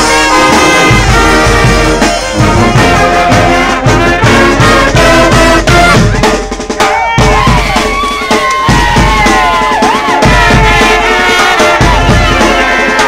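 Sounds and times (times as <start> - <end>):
bass and snare drums: 0.0 - 13.0
brass horns: 0.0 - 13.0.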